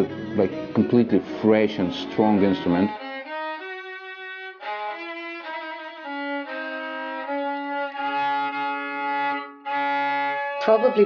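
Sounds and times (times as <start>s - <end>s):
deeper note: 0.0s - 3.0s
violin slow melody: 0.0s - 11.0s.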